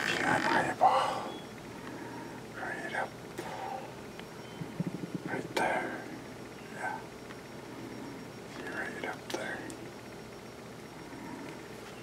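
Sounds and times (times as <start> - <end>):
man whispering: 0.0 - 1.3, 2.5 - 3.9, 5.1 - 7.2, 8.5 - 9.8.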